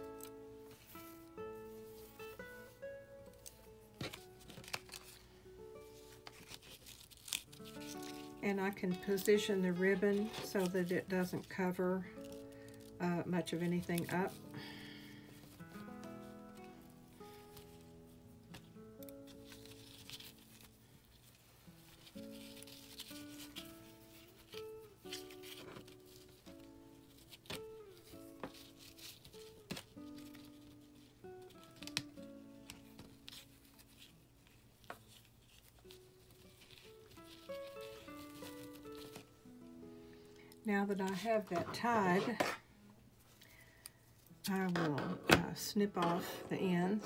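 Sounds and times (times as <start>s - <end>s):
ribbon and paper rustling: 0.0s - 44.8s
soft background music: 0.0s - 47.0s.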